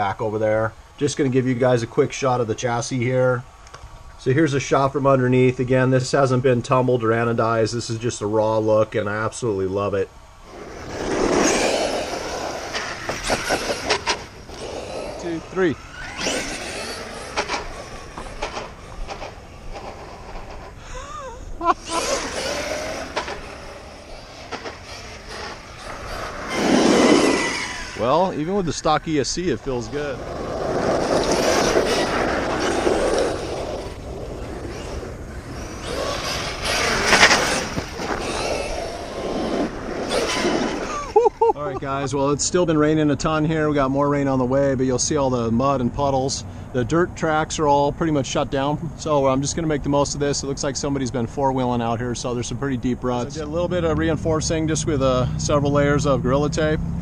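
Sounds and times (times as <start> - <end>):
rc truck motor and tyre rush: 9.6 - 41.8.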